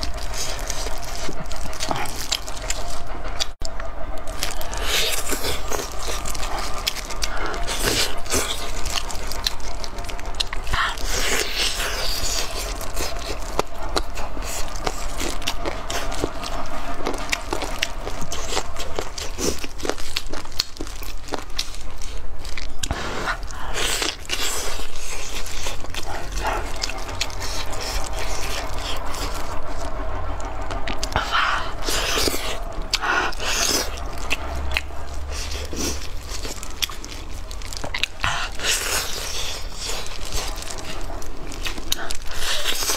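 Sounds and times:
wet chewing: 0.0 - 42.9.

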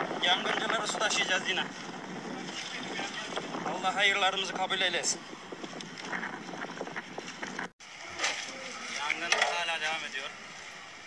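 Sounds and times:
wind rushing on microphone: 0.0 - 7.8.

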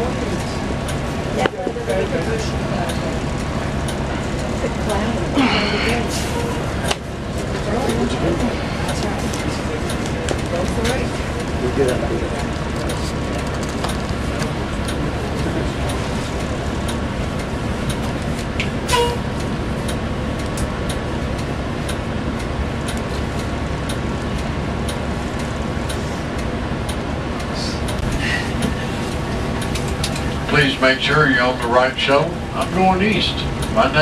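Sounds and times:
bus engine idling: 0.0 - 34.0.

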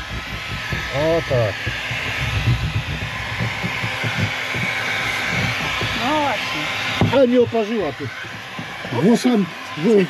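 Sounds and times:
hot air gun blowing: 0.0 - 10.0.

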